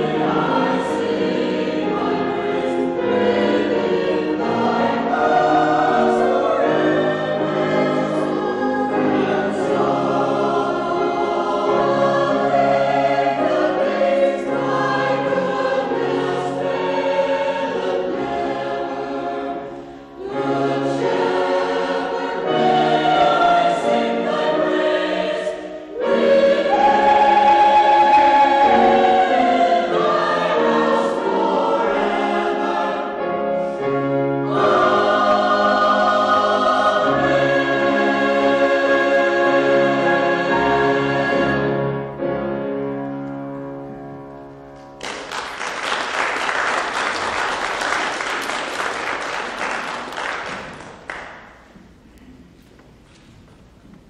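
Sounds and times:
choir singing in parts: 0.0 - 42.8.

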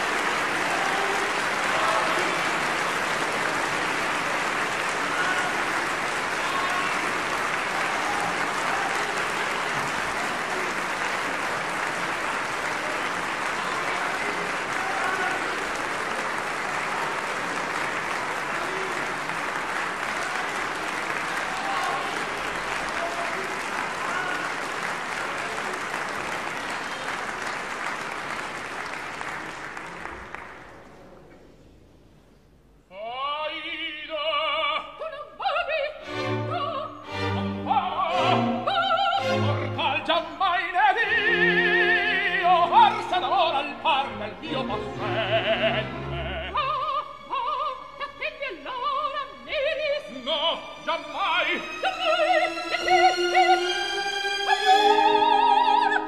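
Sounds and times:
audience applauding: 0.0 - 31.1, 37.2 - 47.0.

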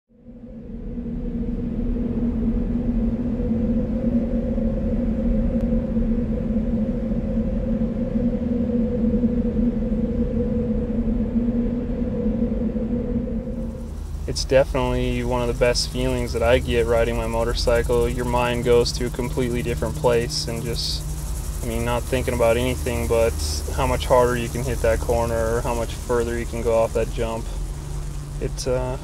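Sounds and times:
steady low hum with rumble: 0.1 - 29.0.

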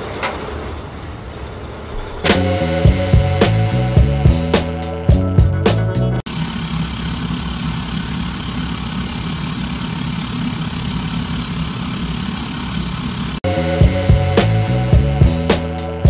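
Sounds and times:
music: 2.1 - 6.2, 13.4 - 16.0
vehicle engine idling: 6.3 - 13.4.

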